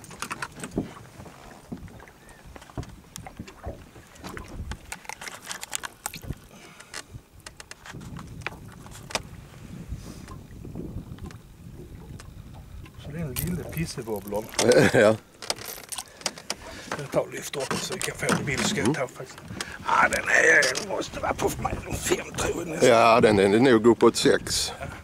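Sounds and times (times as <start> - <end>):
clicks and knocks in boat: 0.0 - 9.3, 11.0 - 19.8.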